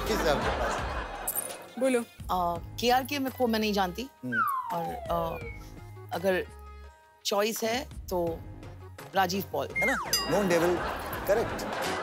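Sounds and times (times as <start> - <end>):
soft background music: 0.0 - 12.0
downward sliding comic tone: 4.3 - 5.7.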